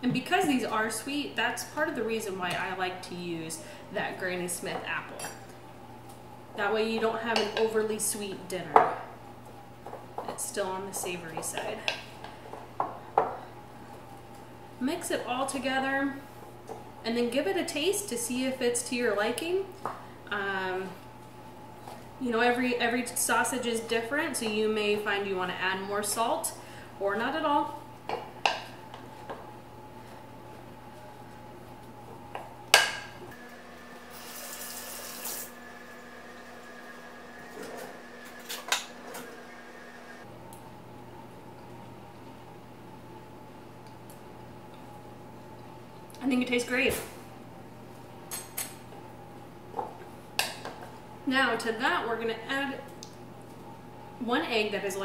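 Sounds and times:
kitchen faucet running: 33.5 - 40.2.

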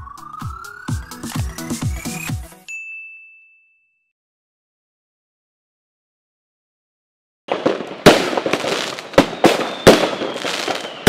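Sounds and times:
rising electronic tone: 0.0 - 2.5
high ringing ding: 2.7 - 4.1.

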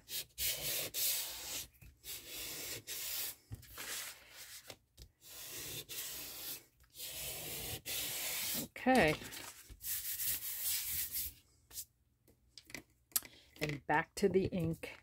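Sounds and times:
sanding file scraping paper folder: 0.1 - 8.7, 9.4 - 11.3.

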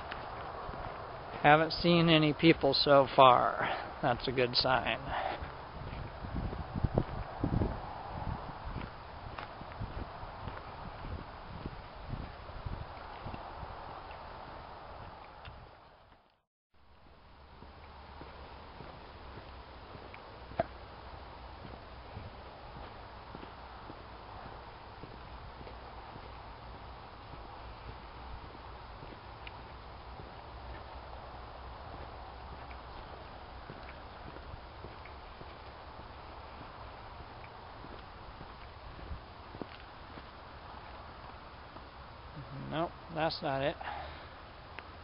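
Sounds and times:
footsteps on gravel trail: 0.0 - 16.3, 17.0 - 45.0
low steady rumble: 0.0 - 45.0.

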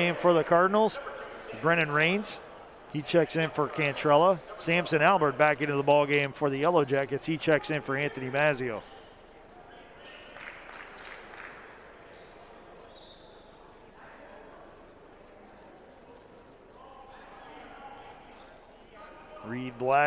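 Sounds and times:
faint echoing voices: 0.0 - 20.0.

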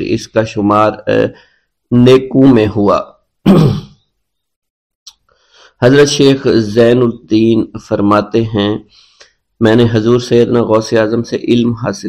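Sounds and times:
man grunting or clearing throat: 3.4 - 4.0.

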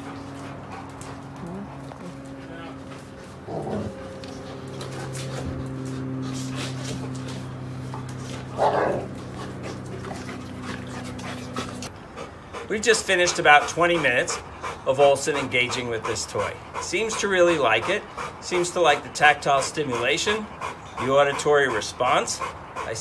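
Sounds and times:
low mechanical hum: 0.0 - 23.0
dog vocalizing: 8.5 - 23.0.

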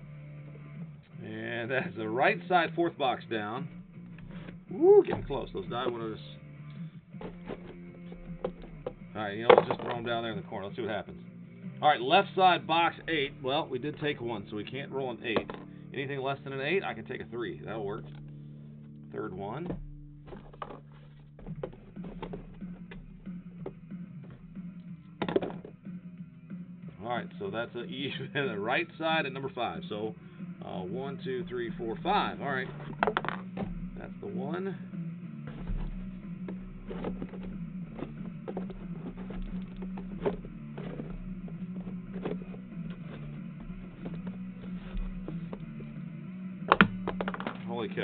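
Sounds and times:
faint background music: 0.0 - 48.0
cardboard boxes clicking and knocking: 7.2 - 10.1, 19.6 - 24.6, 25.2 - 25.8, 31.9 - 34.2, 35.5 - 46.0, 46.7 - 47.7
die tossed: 25.2 - 25.8, 46.7 - 47.7
steady low hum: 31.2 - 47.6.

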